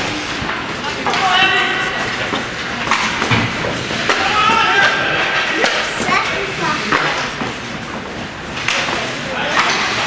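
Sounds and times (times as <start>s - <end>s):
hockey sticks and puck knocking: 0.2s - 10.0s.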